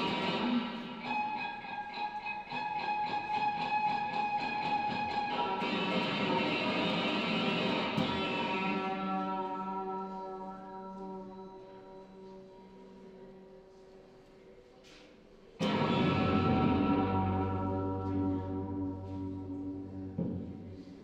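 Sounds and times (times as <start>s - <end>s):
electric violin ringing notes: 0.0s - 12.8s.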